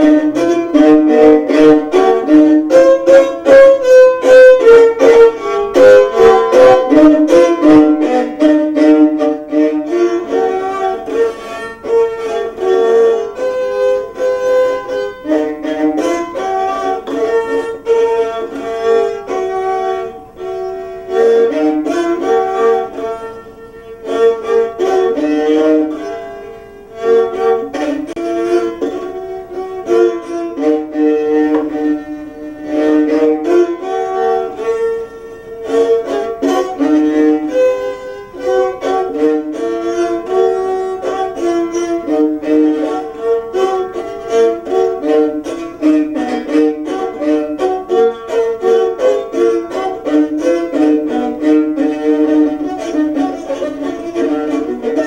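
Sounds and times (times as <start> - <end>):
bowed fiddle tune: 0.0 - 55.0.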